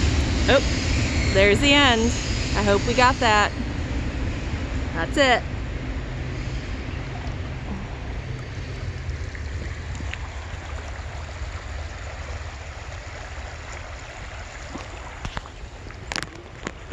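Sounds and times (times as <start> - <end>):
shallow creek rushing: 0.0 - 16.9
train rumbling: 0.0 - 16.9.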